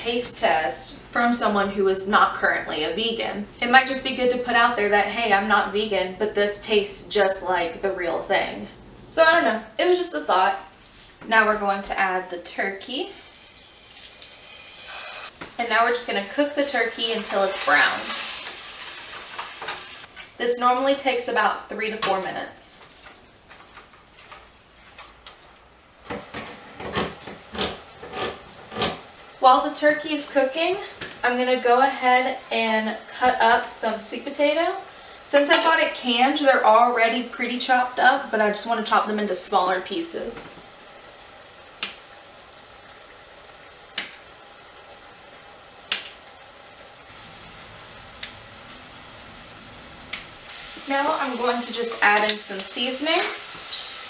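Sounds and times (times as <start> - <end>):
meat sizzling: 12.9 - 20.3, 26.0 - 54.0
utensil scraping pot: 26.1 - 29.1, 50.5 - 54.0.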